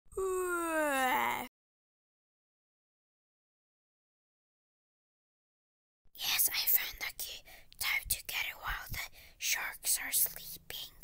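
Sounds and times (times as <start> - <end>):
person whispering: 6.2 - 11.0.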